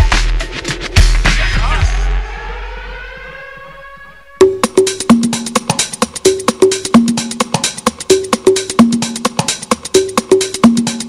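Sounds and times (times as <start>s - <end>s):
music beat: 0.0s - 11.0s
rising siren-like tone: 1.8s - 4.6s.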